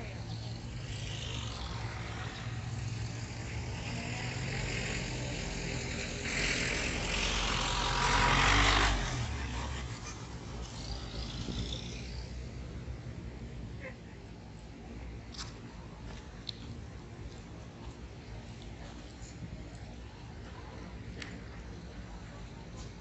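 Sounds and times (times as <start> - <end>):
low traffic hum: 0.0 - 23.0
car driving past: 0.8 - 12.4.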